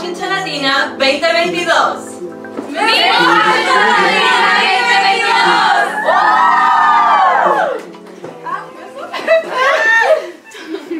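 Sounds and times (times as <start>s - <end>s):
women shouting and cheering: 2.7s - 7.8s, 9.5s - 10.4s
long group whoop: 5.3s - 7.9s, 9.6s - 10.4s.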